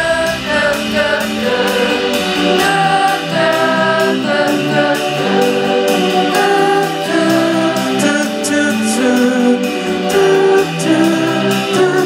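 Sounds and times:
layered sung notes: 0.0 - 12.0
live rock band: 0.0 - 12.0
steady drum beat: 0.0 - 12.0.

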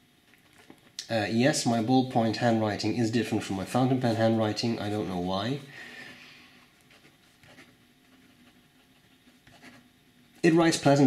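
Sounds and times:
ballpoint pen scratching on paper: 6.9 - 10.0.

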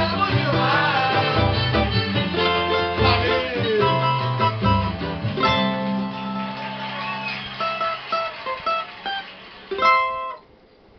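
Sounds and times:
cavaquinho plucked notes: 0.0 - 10.5
cavaquinho strummed chord: 0.0 - 10.5.

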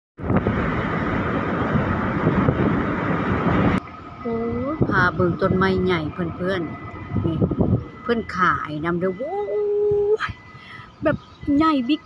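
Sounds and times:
vehicle wind and road noise: 0.2 - 12.0.

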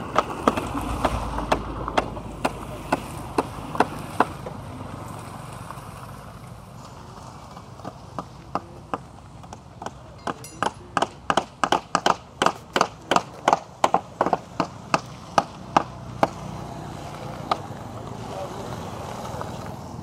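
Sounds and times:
steady rushing noise: 0.0 - 7.6.

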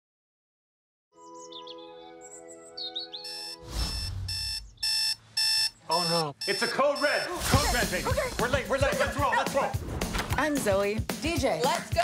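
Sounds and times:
bird chirps: 1.2 - 6.6
alarm clock beeping: 3.2 - 7.9.

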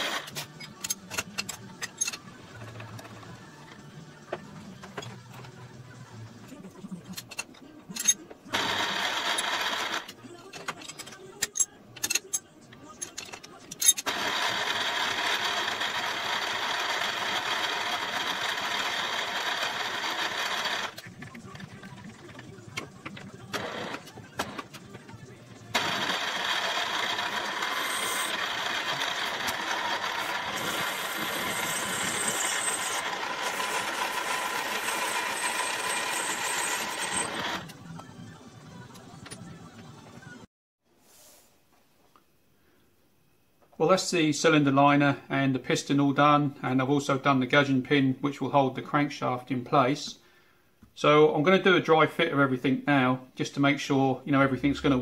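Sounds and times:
tools clicking and knocking: 0.3 - 3.2, 10.5 - 14.1
milling machine spindle running: 14.1 - 21.0, 25.7 - 37.8.

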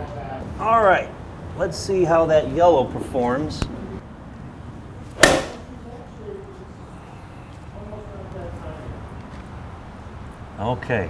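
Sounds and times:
golf club striking a ball: 5.2 - 5.7.

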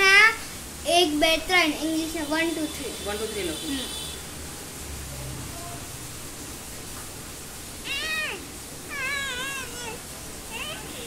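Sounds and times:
high-pitched meow-like calls: 7.8 - 11.0.

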